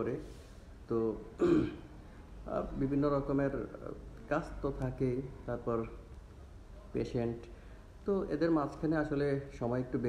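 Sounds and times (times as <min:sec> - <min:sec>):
man speaking: 0:00.0 - 0:00.3, 0:00.9 - 0:01.8, 0:02.4 - 0:06.1, 0:06.9 - 0:10.0
man clearing throat: 0:01.4 - 0:01.9.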